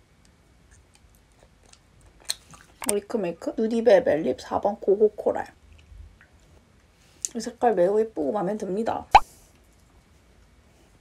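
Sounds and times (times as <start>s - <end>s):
mouth chewing soft jelly: 0.2s - 3.0s.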